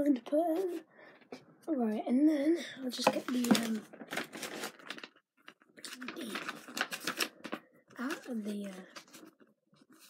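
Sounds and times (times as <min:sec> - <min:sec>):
packaging rustling and crinkling: 0:03.0 - 0:10.0.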